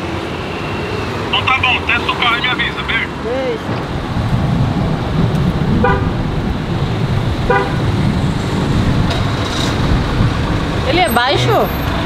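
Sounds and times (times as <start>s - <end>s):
car horn beeps: 5.8s - 6.1s, 7.5s - 7.9s.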